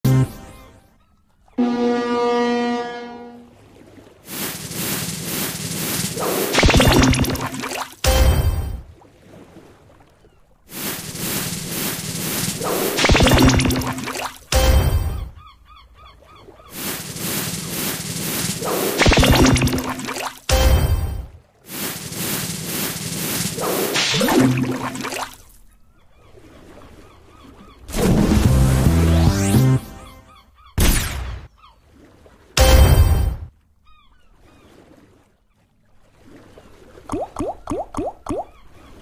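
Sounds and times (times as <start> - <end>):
held horn-like tone: 1.6 - 3.6
spinning reel whoosh with ticking: 21.7 - 24.0.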